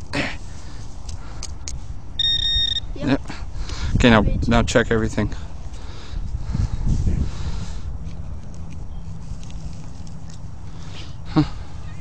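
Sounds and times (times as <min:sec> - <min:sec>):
metal detector beep: 0:02.2 - 0:03.0.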